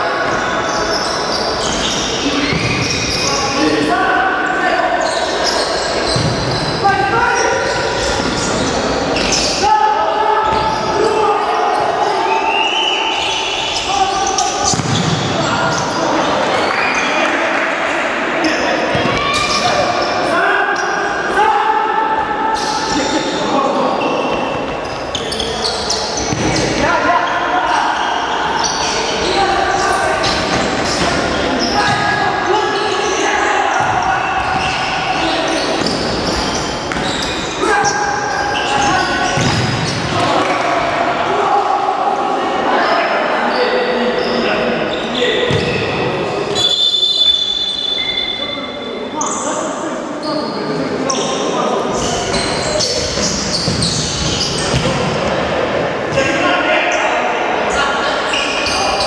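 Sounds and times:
players calling and shouting: 0.0 - 59.0.

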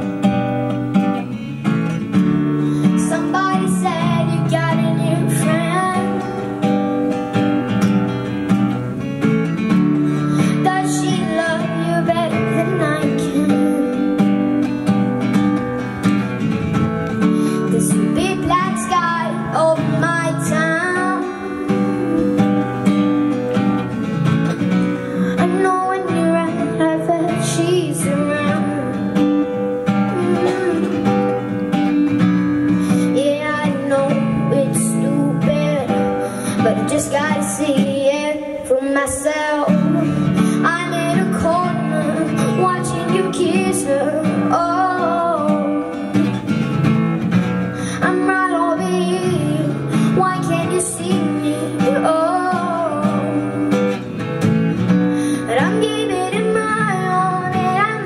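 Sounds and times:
strummed acoustic guitar: 0.0 - 58.0
boy singing a pop ballad: 2.6 - 7.8, 9.5 - 15.4, 17.2 - 46.7, 47.7 - 58.0.

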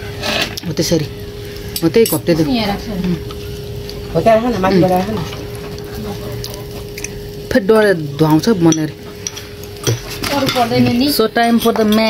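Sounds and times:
cutlery clinking against a dish: 6.9 - 10.7, 11.4 - 12.0.

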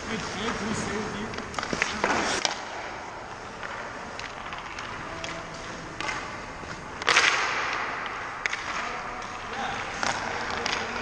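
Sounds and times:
skate blades scraping ice: 0.0 - 11.0.

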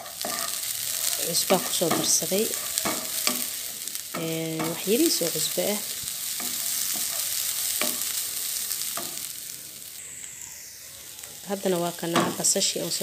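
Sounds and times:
wooden spoon scraping a pan: 0.0 - 9.3
meat sizzling in a frying pan: 0.0 - 13.0.

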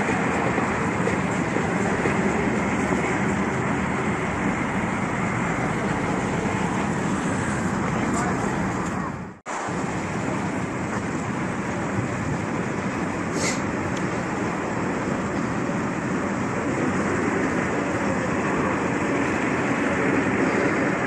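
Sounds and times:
go-kart engines idling: 0.0 - 9.4, 10.0 - 21.0.

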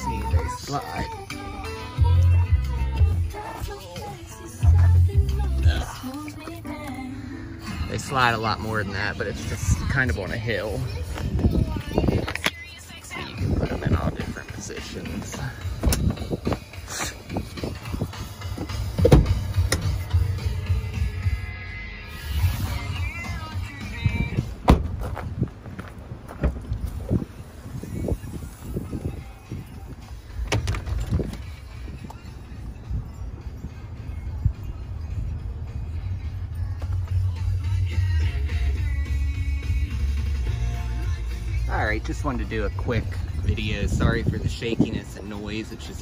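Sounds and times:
wind buffeting microphone: 11.0 - 12.4, 13.3 - 18.4, 24.0 - 35.4, 43.1 - 45.2
handling knocks and clicks: 30.4 - 31.5.

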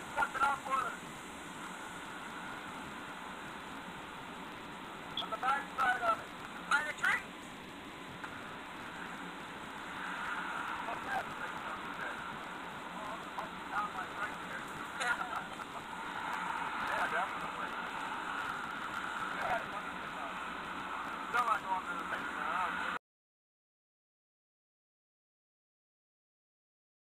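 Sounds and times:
steady hiss: 0.0 - 23.0.

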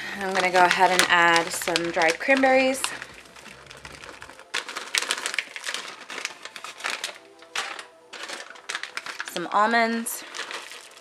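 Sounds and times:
dried fruit poured into bowl: 0.0 - 11.0.

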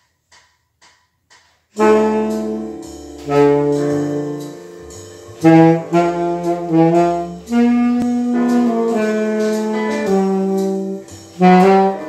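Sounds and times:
backing track with bass line: 1.8 - 12.0
saxophone jazz melody: 1.8 - 12.0.

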